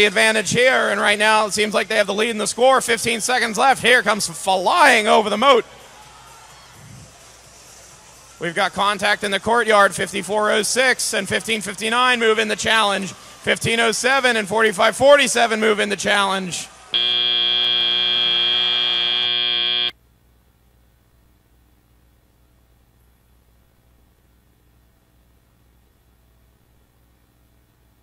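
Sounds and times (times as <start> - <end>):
hum of large crowd: 0.0 - 19.9
loud electronic buzzer: 17.0 - 19.9.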